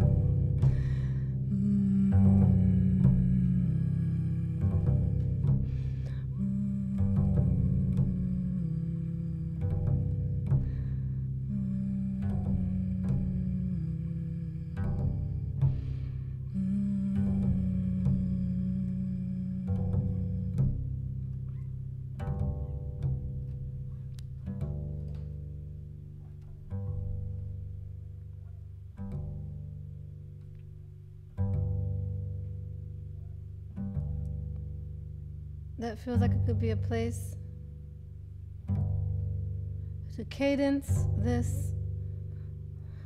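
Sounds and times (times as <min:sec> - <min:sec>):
plucked double bass: 0:00.0 - 0:43.0.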